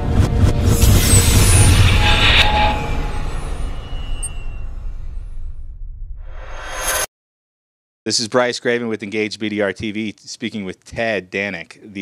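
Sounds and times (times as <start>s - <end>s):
deep rumble: 0.0s - 6.4s
bright hissing swell: 0.8s - 4.8s.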